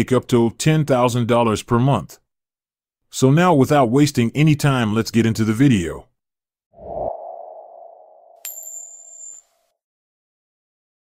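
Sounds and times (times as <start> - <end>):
mid-pitched ringing tone: 7.3 - 9.6.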